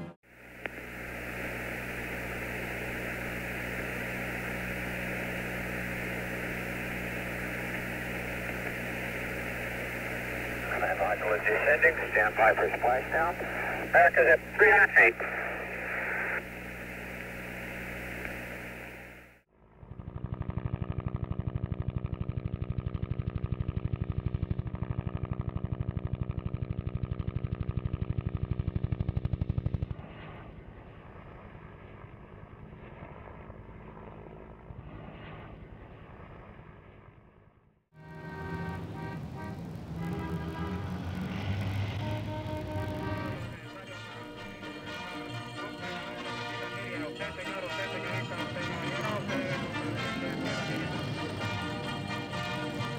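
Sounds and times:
radio voice with static: 1.5s - 19.3s, 42.8s - 51.4s
music: 38.0s - 40.9s, 42.0s - 52.9s.

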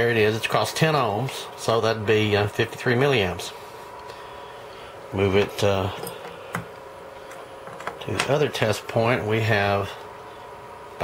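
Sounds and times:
faint background hum: 0.0s - 11.0s.

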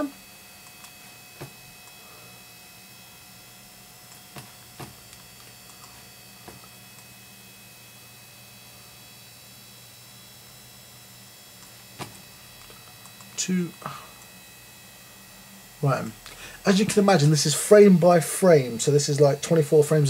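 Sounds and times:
electrical hum: 0.0s - 20.0s.

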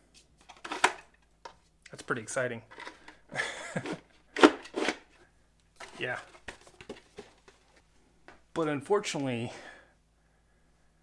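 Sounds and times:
man speaking: 5.9s - 6.3s, 8.5s - 9.8s.

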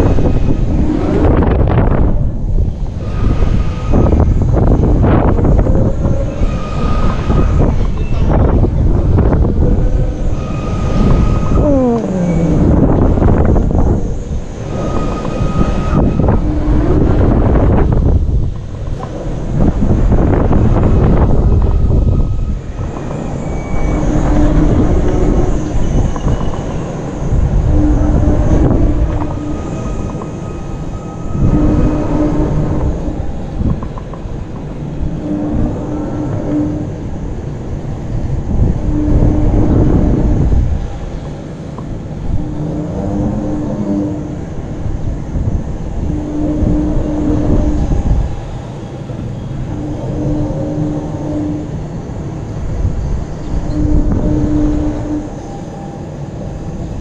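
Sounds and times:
ride mechanical hum: 0.0s - 57.0s
wind rushing over microphone: 0.0s - 57.0s.

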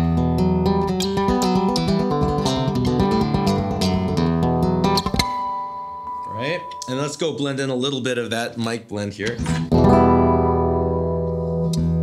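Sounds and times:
plucked guitar notes: 0.0s - 7.4s, 9.2s - 12.0s
classical guitar chord ringing: 9.7s - 12.0s.

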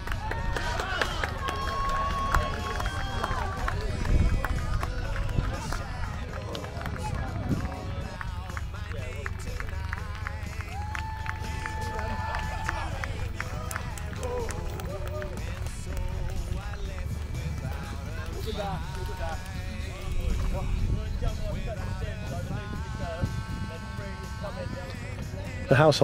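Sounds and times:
wind rumble on microphone: 0.0s - 25.7s
indistinct voices: 0.0s - 26.0s
music over public address: 0.0s - 26.0s
horses galloping on turf: 0.6s - 20.9s.

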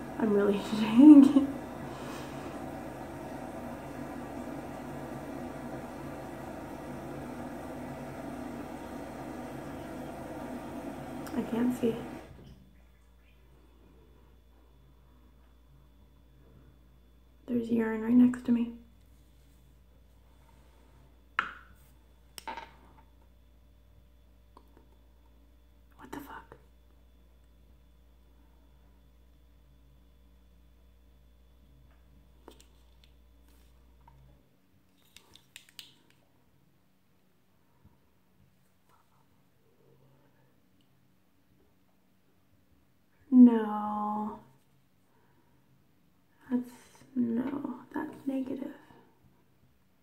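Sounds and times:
low hum: 0.0s - 17.6s
woman whispering: 25.9s - 26.7s.

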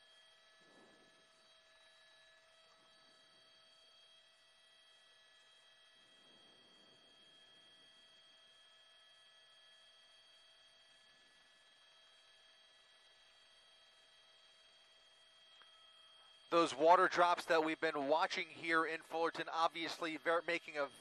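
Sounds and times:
faint electronic whine: 0.0s - 21.0s.

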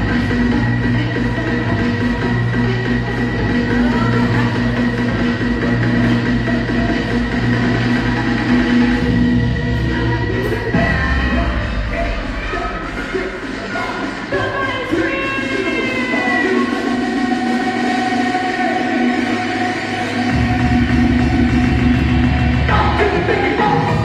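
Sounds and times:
loud dance music: 0.0s - 24.0s.

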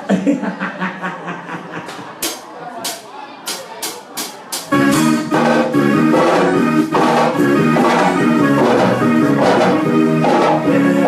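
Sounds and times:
live band with keyboard and drums: 2.2s - 11.0s.

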